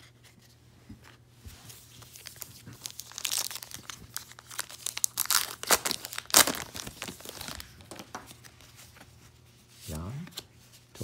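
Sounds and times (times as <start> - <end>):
foil wrapper tearing and crinkling: 2.2 - 8.2.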